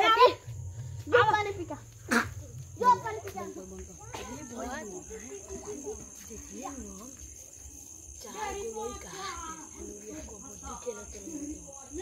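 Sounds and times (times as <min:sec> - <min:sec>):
crickets chirring: 0:00.0 - 0:12.0
people talking and calling out: 0:00.0 - 0:12.0.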